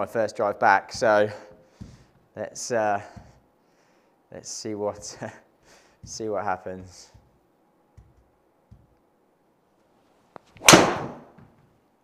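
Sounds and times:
golf driver striking ball: 10.6 - 11.2.

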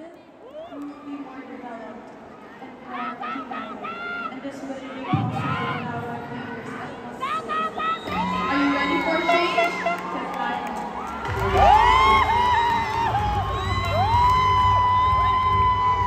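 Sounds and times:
audience cheering and screaming: 7.2 - 16.0.

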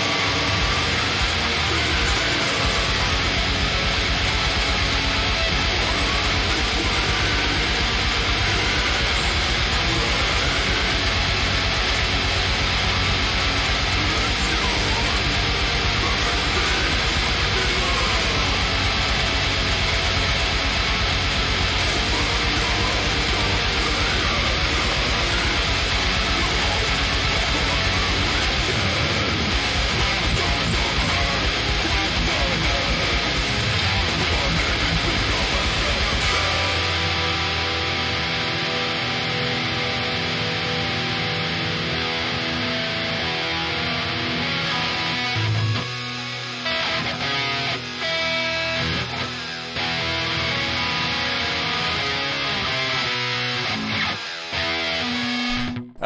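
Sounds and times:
distorted electric guitar riffs: 0.0 - 56.0.

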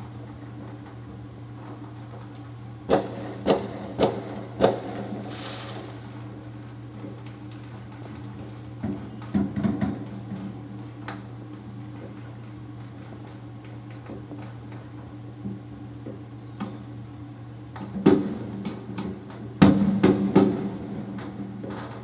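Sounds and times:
steady low hum: 0.0 - 22.0
distant fireworks popping: 0.5 - 15.6
firework hiss: 4.8 - 6.4.

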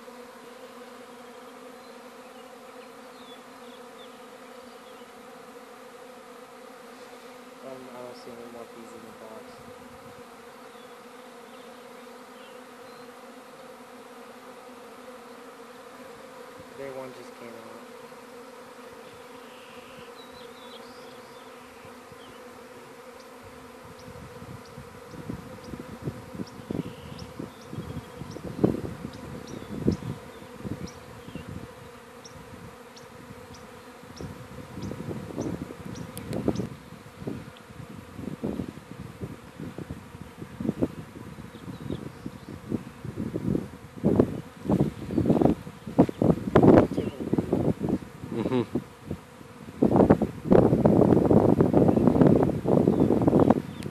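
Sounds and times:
bee swarm buzzing: 0.0 - 53.9.

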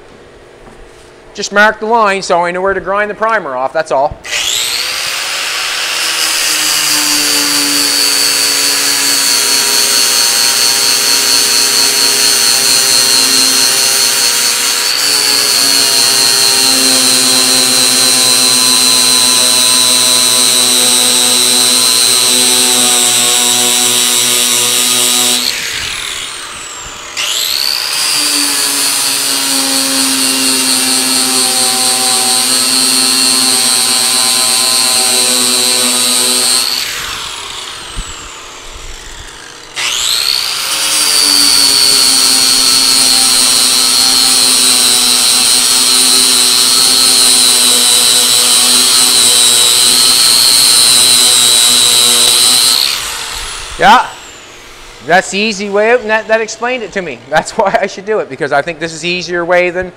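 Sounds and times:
angle grinder sanding metal: 4.3 - 58.2.

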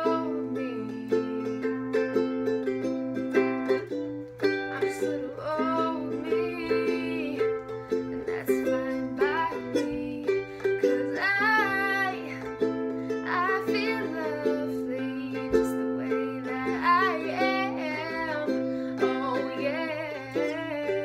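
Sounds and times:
person singing: 0.0 - 21.0
ukulele strummed chords: 0.0 - 21.0.

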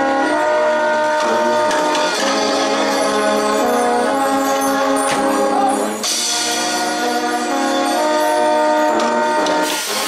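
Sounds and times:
brass band sustained chord: 0.0 - 10.0
percussion hits: 1.0 - 10.0.

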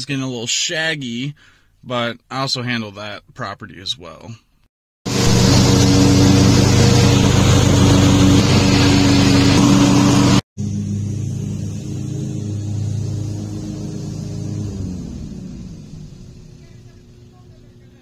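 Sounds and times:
lawn mower engine running: 5.1 - 17.6
distant riding mower engine: 5.1 - 18.0.

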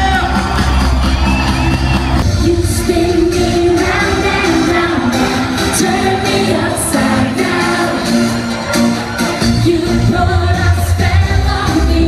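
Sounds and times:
live eurodance music: 0.0 - 12.0
person singing: 2.2 - 8.5, 9.4 - 12.0.

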